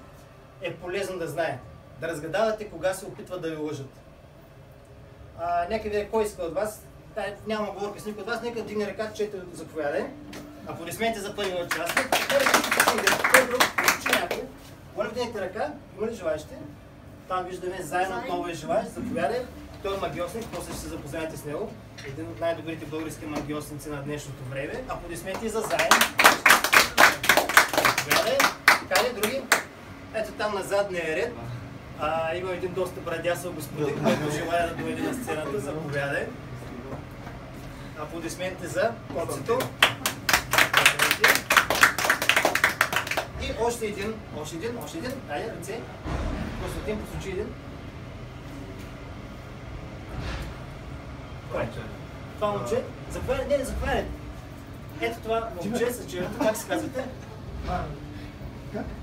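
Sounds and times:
audience applauding: 11.4s - 14.5s, 25.4s - 29.7s, 39.6s - 43.4s.

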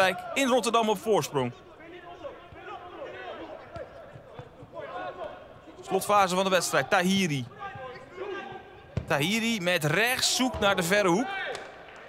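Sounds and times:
players calling out: 0.0s - 11.9s.

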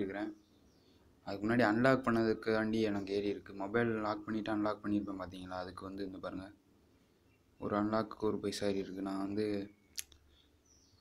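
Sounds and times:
man speaking: 0.0s - 0.4s, 1.3s - 6.6s, 7.6s - 9.7s
sharp click: 9.9s - 10.2s.

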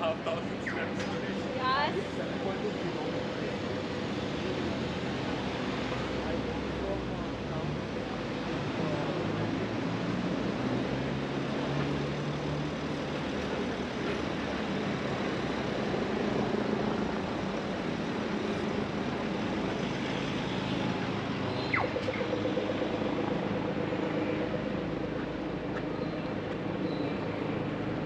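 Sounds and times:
cars passing over tram tracks: 0.0s - 28.0s
engine hum: 0.0s - 28.0s.

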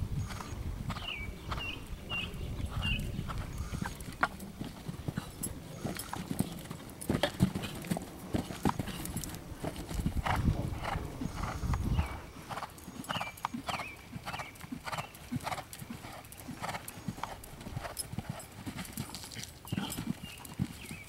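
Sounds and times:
horse hoofbeats on sand: 0.3s - 21.0s.

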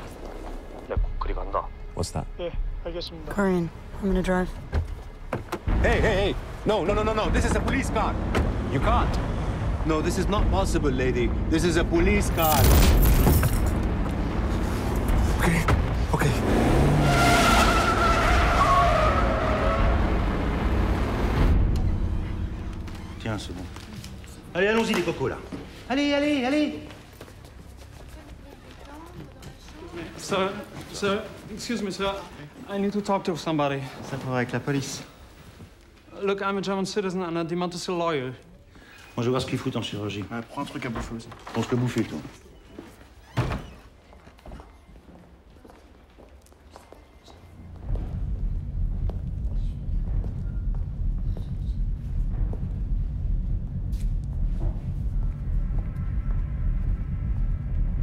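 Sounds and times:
car engine revving: 13.4s - 23.0s.

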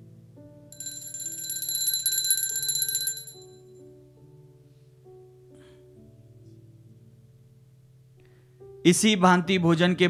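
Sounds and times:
altar bells ringing: 0.8s - 3.6s
soft instrumental music: 2.5s - 10.0s.

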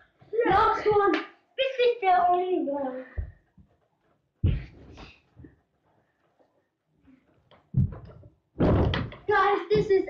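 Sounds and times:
thuds of person landing: 4.4s - 5.2s, 7.7s - 10.0s.

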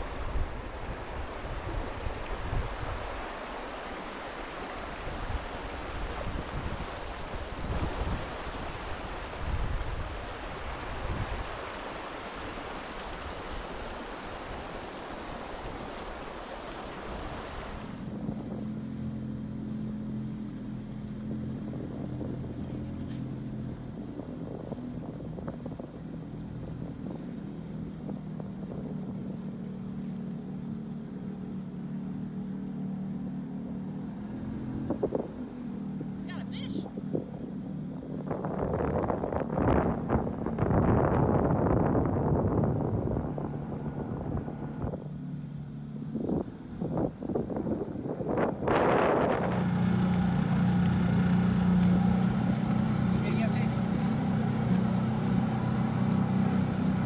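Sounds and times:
wind buffeting microphone: 0.0s - 3.5s, 4.8s - 16.2s, 17.0s - 19.3s, 21.2s - 30.6s, 34.4s - 57.0s
boat motor running: 17.6s - 57.0s.

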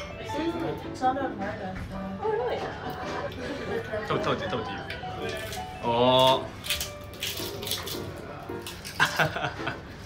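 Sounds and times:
background music: 0.0s - 10.0s
crunching of fried food: 5.2s - 9.4s.

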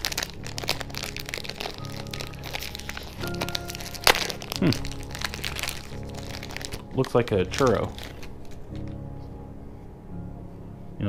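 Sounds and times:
sharp crack: 0.0s - 9.0s
candy wrapper crinkling: 0.0s - 9.4s
soft background music: 0.0s - 11.0s.

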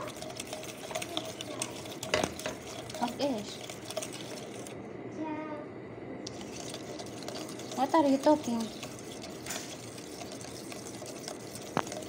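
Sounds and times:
wire whisk scraping metal bowl: 0.0s - 4.8s, 6.3s - 12.0s.

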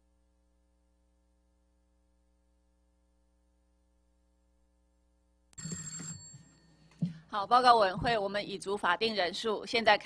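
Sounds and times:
faint electrical hum: 0.0s - 5.6s.

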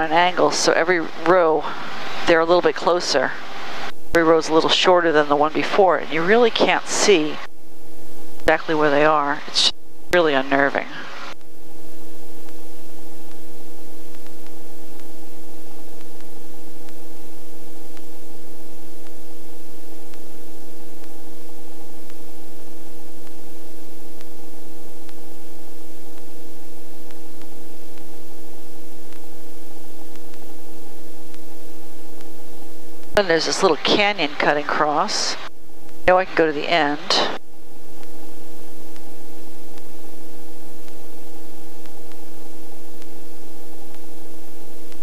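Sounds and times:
helicopter cabin hiss and whine: 0.0s - 18.3s, 18.9s - 44.6s.

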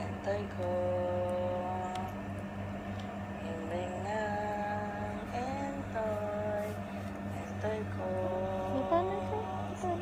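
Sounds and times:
low electrical hum: 0.0s - 10.0s
woman humming: 7.6s - 10.0s.

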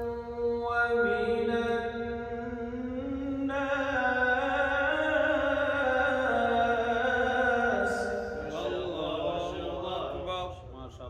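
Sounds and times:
man chanting melodic recitation: 0.0s - 10.7s.

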